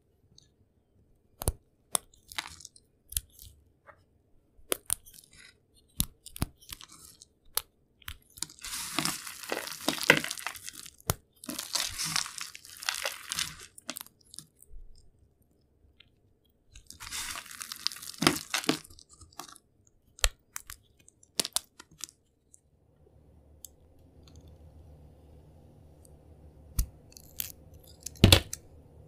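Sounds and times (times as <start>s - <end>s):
soap pieces snapping: 4.7s - 14.6s, 16.7s - 22.2s
soap pieces crunching: 4.7s - 14.7s, 16.8s - 19.6s.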